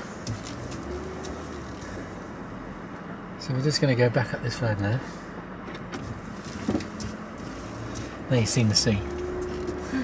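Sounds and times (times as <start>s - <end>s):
engine and road noise in cabin: 0.0s - 10.0s.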